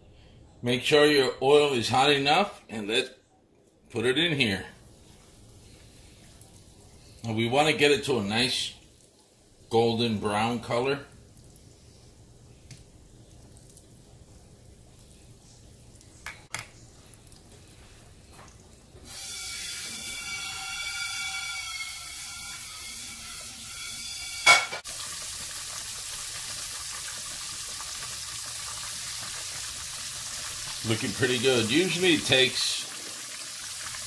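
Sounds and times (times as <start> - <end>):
fish frying in oil: 19.1 - 34.0.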